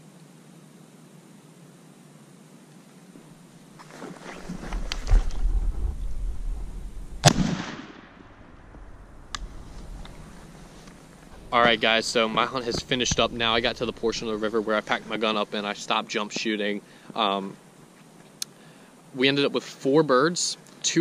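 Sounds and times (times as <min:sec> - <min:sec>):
low rumbling: 0:04.3 - 0:15.2
shotgun shot: 0:07.2 - 0:08.5.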